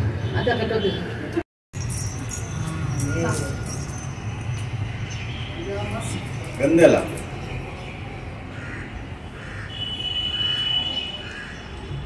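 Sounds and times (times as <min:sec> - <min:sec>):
crow cawing: 0:08.5 - 0:11.7.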